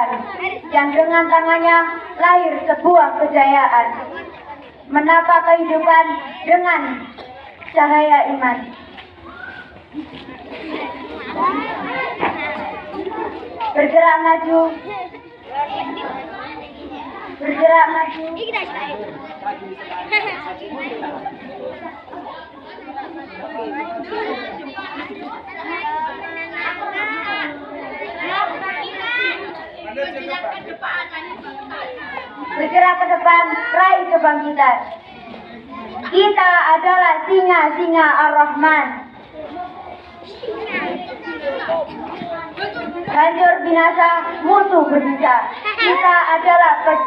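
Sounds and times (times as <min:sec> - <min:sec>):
children talking: 0:00.0 - 0:47.0
many voices chattering: 0:00.0 - 0:47.0.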